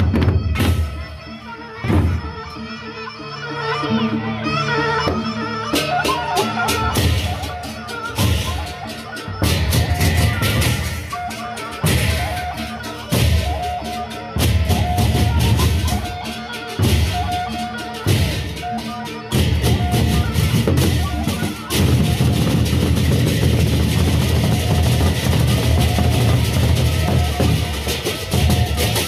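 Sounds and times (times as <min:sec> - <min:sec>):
loud fast drumming: 0:05.9 - 0:13.6, 0:16.8 - 0:29.0.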